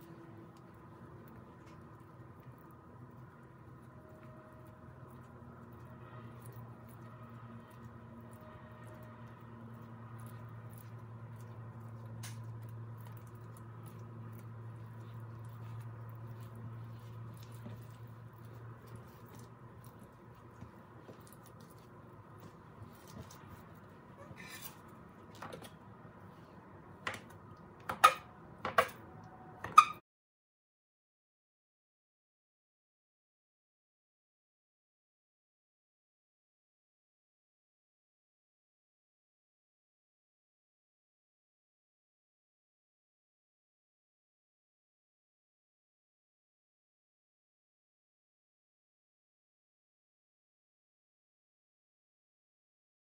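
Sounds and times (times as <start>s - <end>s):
steady low hum: 0.0s - 29.6s
hands rolling dough: 0.0s - 30.0s.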